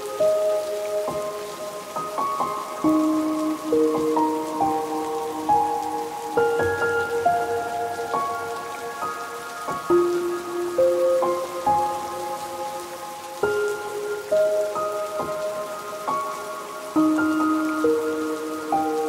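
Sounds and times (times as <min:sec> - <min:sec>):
soft ambient melody: 0:00.0 - 0:19.0
steady rain falling: 0:00.0 - 0:19.0.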